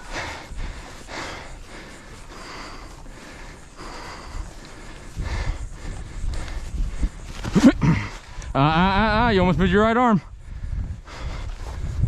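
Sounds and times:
wind on microphone: 4.0 - 12.0.

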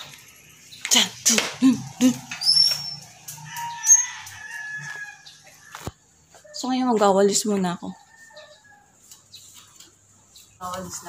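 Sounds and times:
high bird chirps: 2.2 - 5.5
rooster crowing: 2.3 - 6.0, 8.0 - 9.1.

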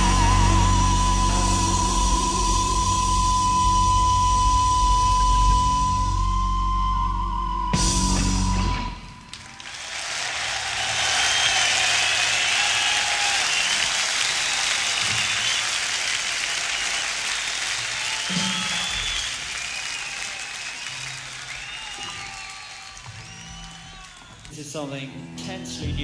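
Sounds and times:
whistles in crowd: 2.9 - 24.6
audience applauding: 9.2 - 24.7.

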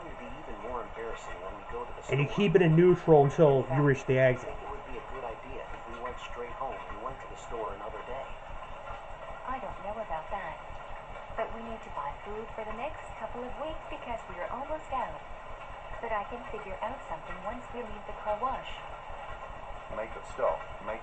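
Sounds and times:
distant cartoon voices from speaker: 0.0 - 8.3.

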